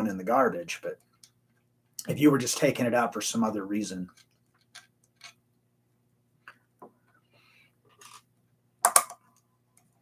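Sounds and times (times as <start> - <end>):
low steady hum: 0.0 - 10.0
pliers clicking and scraping metal: 4.1 - 5.4.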